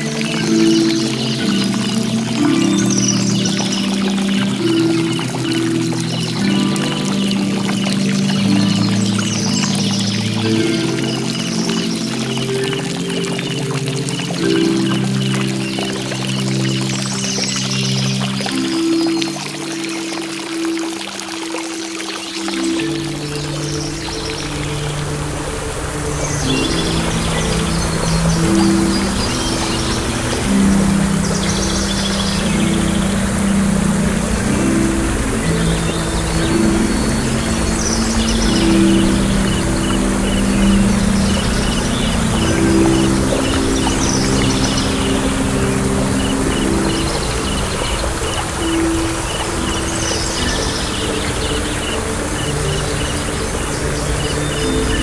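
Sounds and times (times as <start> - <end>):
crickets chirping: 0.0 - 55.0
slow piano notes: 0.0 - 55.0
waterfall rushing: 0.0 - 55.0.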